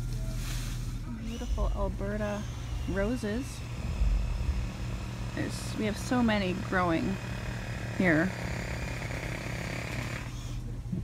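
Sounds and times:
low hum: 0.0 - 9.5
small engine running: 1.1 - 10.7.

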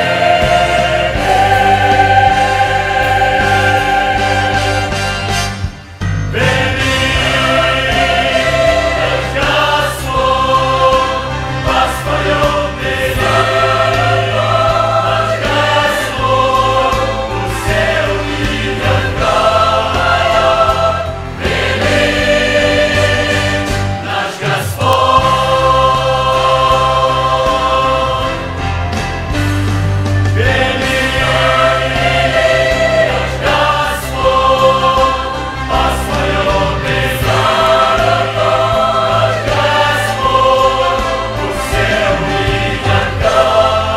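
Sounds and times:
choir singing a hymn: 0.0 - 29.4, 30.1 - 43.9.

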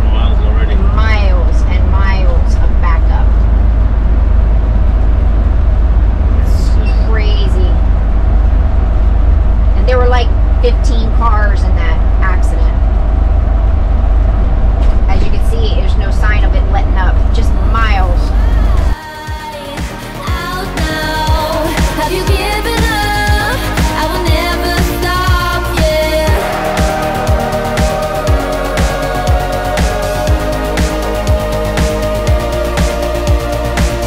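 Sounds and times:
engine and road rumble in cabin: 0.0 - 19.0.

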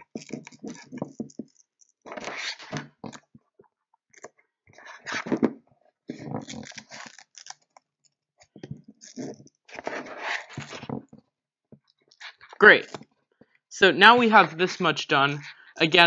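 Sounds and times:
strap rustling and scraping: 0.0 - 3.4, 6.1 - 11.2.

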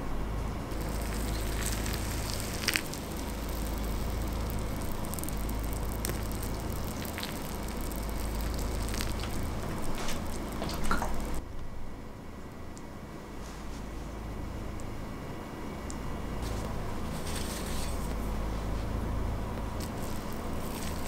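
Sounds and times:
grains hissing and crackling: 0.6 - 11.4, 19.8 - 21.0
water pouring from kettle: 0.7 - 11.4.

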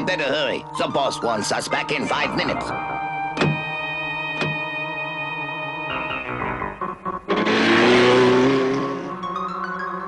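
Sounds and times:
cartoon background music: 0.0 - 10.0
vehicles rushing with rising engine tone: 6.0 - 10.0.

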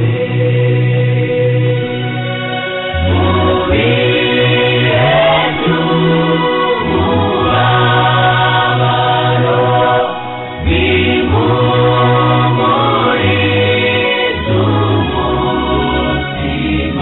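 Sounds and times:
bass line: 0.0 - 17.0
gospel choir singing: 0.0 - 17.0.

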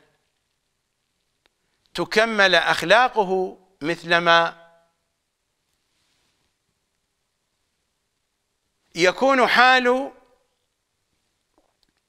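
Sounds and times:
faint click: 1.4 - 2.0
man speaking: 2.0 - 4.6, 8.9 - 10.2.

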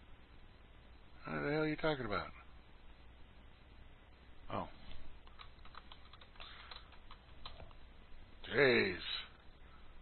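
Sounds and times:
keyboard typing: 5.2 - 7.8.

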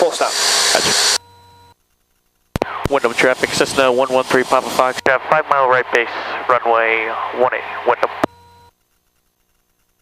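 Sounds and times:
radio audio: 0.0 - 1.2, 2.6 - 8.3.

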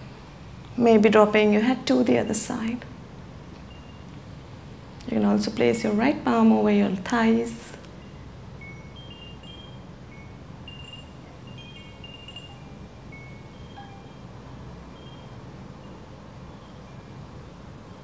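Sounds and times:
low steady hum: 0.0 - 18.0
wind chime tinkling: 8.0 - 18.0.

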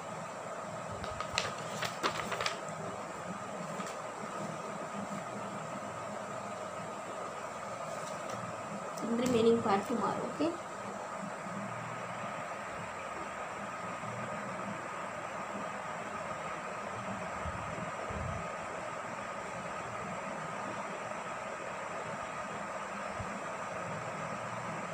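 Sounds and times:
faint constant whine: 0.0 - 24.9.

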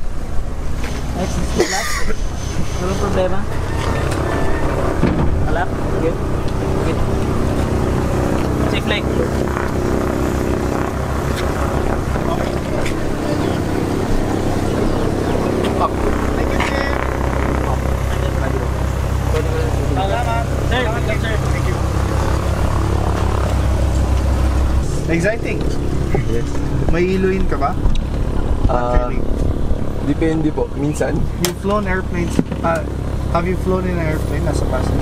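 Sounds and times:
light aircraft engine and propeller: 0.0 - 35.0.

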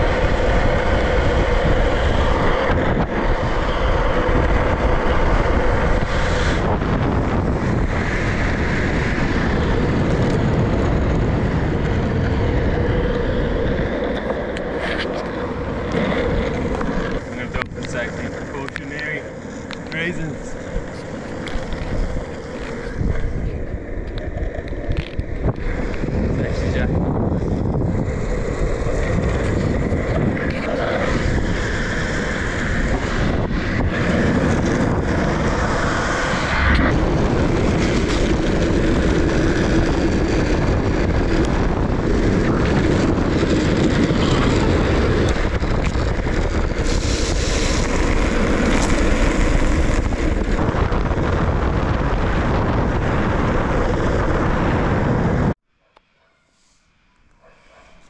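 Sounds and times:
wind rushing over microphone: 0.0 - 55.6
skateboard wheels rolling on asphalt: 0.0 - 56.3.

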